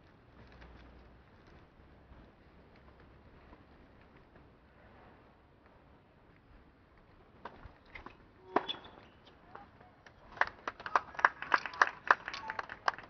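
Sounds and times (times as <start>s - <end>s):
crowd clapping: 10.0s - 13.0s.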